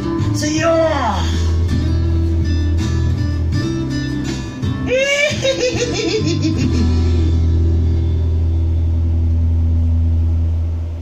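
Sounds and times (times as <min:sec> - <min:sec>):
backing track closing chord: 0:05.6 - 0:11.0.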